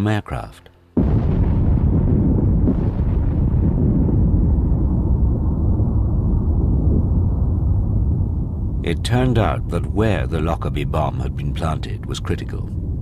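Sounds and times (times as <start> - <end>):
low rumble: 0.9 - 13.0
explosion blast: 1.0 - 9.7
explosion crackle: 1.0 - 13.0.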